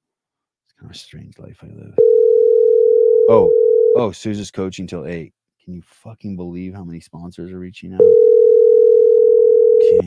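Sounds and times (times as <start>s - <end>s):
telephone ringback tone: 2.0s - 4.0s, 8.0s - 10.0s.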